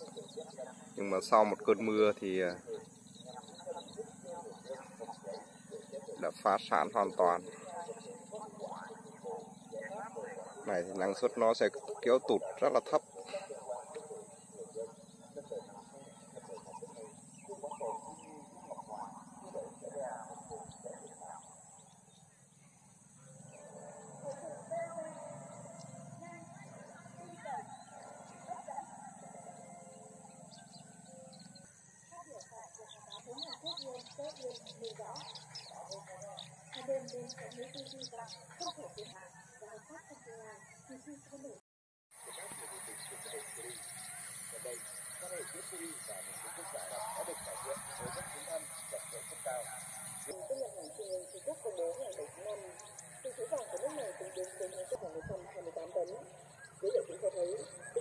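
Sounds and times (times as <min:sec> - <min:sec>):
distant voices murmuring: 0:00.0 - 0:41.2, 0:42.2 - 0:58.0
chorus of wavering animal calls: 0:00.0 - 0:41.3, 0:42.2 - 0:58.0
birds chirping: 0:00.0 - 0:58.0.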